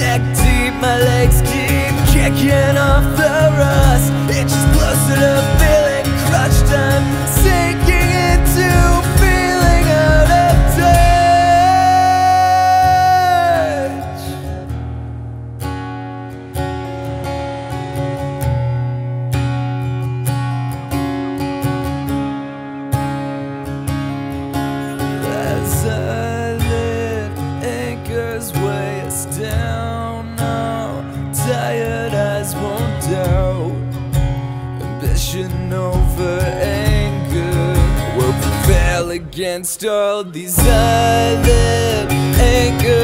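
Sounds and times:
acoustic guitar strummed chords: 0.0 - 43.0.

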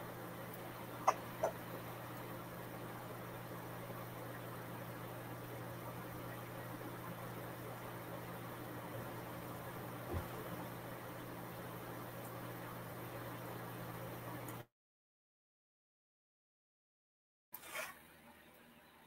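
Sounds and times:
low electrical hum with hiss: 0.0 - 14.7.

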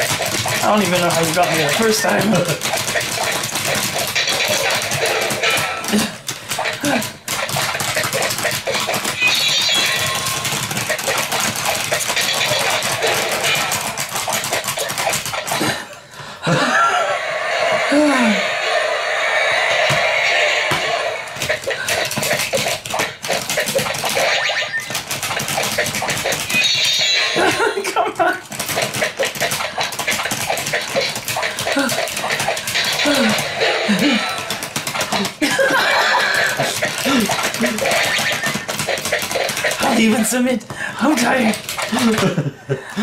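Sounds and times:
plastic clicking and clacking: 0.0 - 15.7, 21.4 - 27.0, 28.4 - 33.6, 34.3 - 42.4
man's voice: 0.6 - 2.6.

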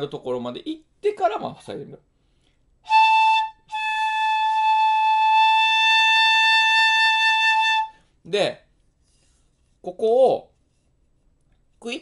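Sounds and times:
bamboo flute notes: 2.9 - 8.1.

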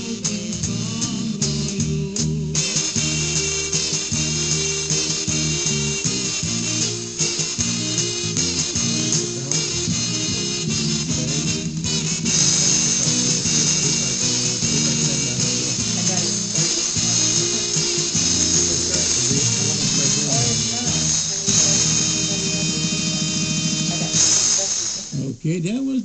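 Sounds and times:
polka band on radio: 2.6 - 26.0.

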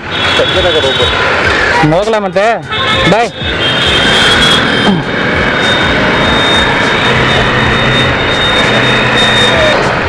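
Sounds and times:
motorcycle engine running: 3.0 - 10.0
thin high whine: 4.0 - 9.8.

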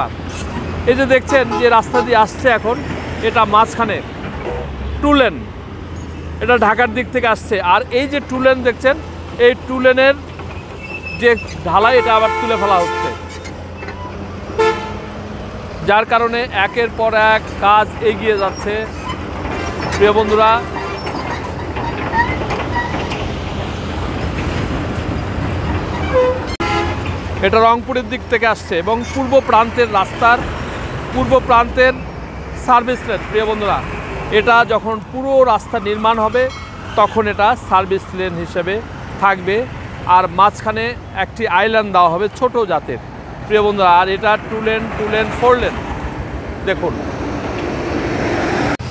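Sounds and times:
highway traffic rumble: 0.0 - 48.9
man talking: 0.8 - 4.1, 5.0 - 5.5, 6.4 - 10.2, 11.1 - 13.2, 15.8 - 19.0, 19.9 - 20.7, 27.4 - 30.5, 31.1 - 32.0, 32.6 - 45.8, 46.6 - 47.0.

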